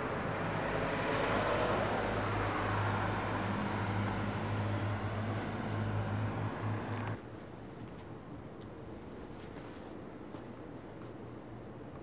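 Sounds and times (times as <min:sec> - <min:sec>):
passing vehicles rushing: 0:00.0 - 0:07.2.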